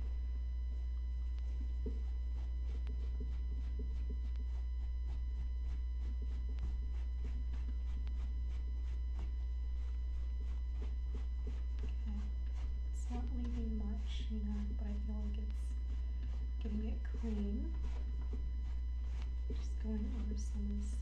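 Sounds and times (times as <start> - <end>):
steady low hum: 0.0 - 21.0
towel rubbing on canvas: 1.3 - 15.0, 15.8 - 21.0.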